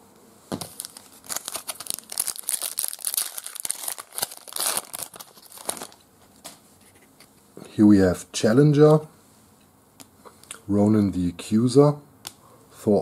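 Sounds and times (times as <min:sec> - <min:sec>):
foil wrapper crinkling and tearing: 0:00.6 - 0:06.0.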